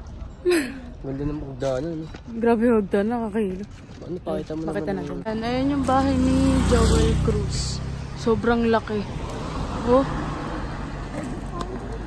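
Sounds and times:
car driving past: 5.8 - 11.9.

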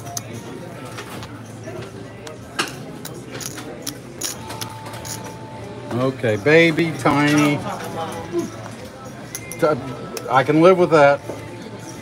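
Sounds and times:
murmur of voices: 0.0 - 12.0
casino chips clacking: 3.0 - 5.4.

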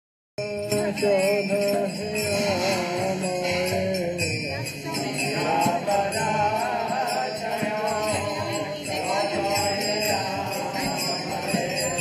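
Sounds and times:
small hand cymbals ringing: 0.4 - 12.0.

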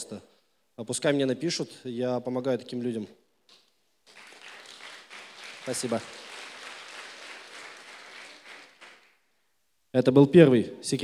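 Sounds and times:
audience applauding: 4.0 - 9.2.

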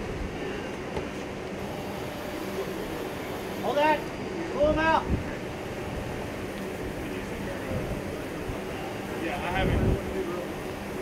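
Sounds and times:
ship machinery rumble: 0.0 - 11.0
wind: 0.0 - 11.0
faint voices: 0.2 - 11.0.

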